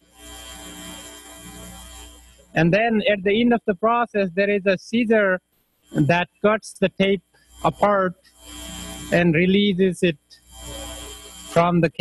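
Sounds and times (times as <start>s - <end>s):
steady hum with held tones: 0.0s - 12.0s.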